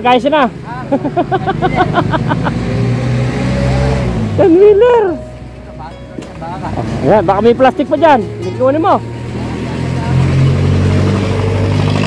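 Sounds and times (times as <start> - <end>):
man laughing: 0.8 - 2.7.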